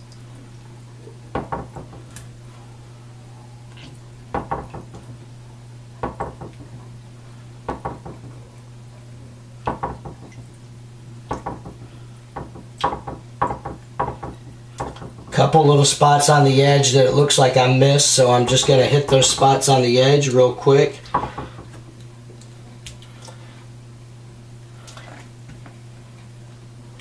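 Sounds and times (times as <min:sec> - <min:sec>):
steady low hum: 0:00.0 - 0:27.0
glass knocking against sink: 0:01.4 - 0:02.0, 0:04.4 - 0:05.0, 0:06.0 - 0:06.6, 0:07.7 - 0:08.3, 0:09.7 - 0:10.4, 0:12.4 - 0:15.3, 0:21.1 - 0:21.7.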